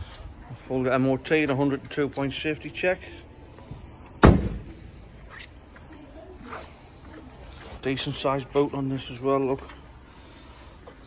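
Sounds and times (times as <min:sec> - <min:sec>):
car door slamming: 0:04.2 - 0:04.7.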